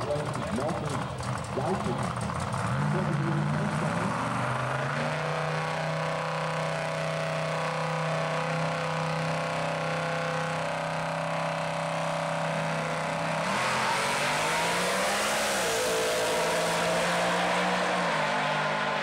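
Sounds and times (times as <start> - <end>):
drag car engines: 0.0 - 19.0.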